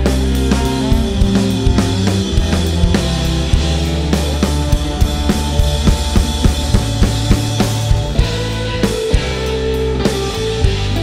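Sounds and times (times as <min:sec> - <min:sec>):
rock band playing: 0:00.0 - 0:11.0
snare and bass drum hits: 0:04.8 - 0:08.2.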